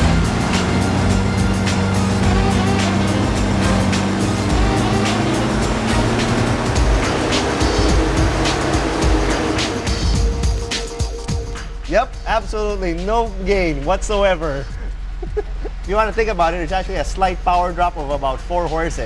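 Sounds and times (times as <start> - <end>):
car engine under full load: 0.0 - 11.7, 14.1 - 17.0
background music: 0.0 - 19.0.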